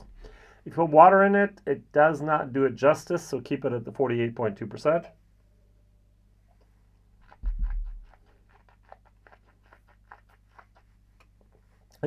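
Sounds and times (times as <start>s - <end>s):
wet mouth clicks: 6.5s - 12.0s.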